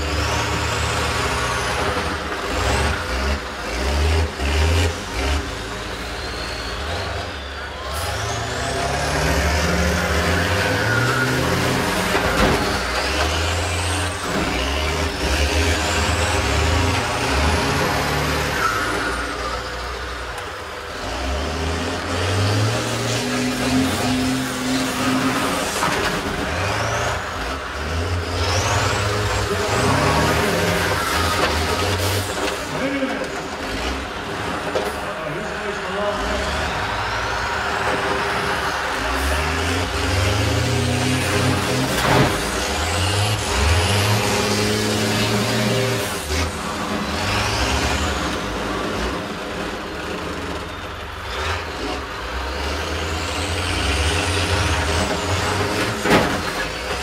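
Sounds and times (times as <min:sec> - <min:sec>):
bus engines revving: 0:00.0 - 0:57.0.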